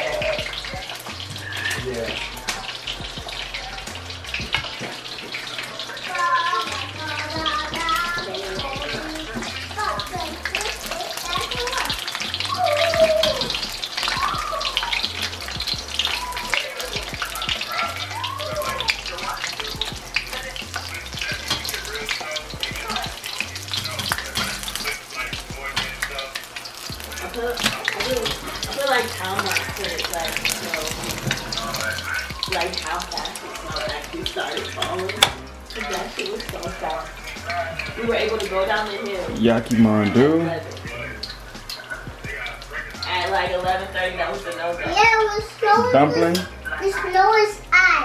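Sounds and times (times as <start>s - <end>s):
background music with bass beat: 0.0s - 4.8s, 6.8s - 47.8s
dumplings sizzling in hot oil: 0.0s - 48.0s.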